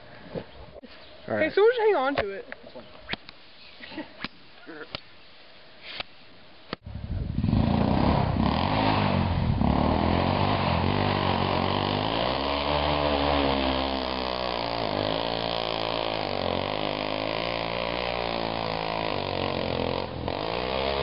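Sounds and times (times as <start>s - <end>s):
atv engine revving: 7.2s - 21.0s.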